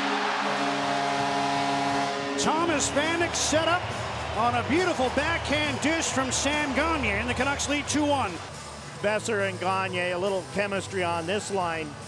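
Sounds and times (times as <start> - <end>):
goal horn blaring: 0.0 - 5.6
crowd cheering: 0.0 - 8.5.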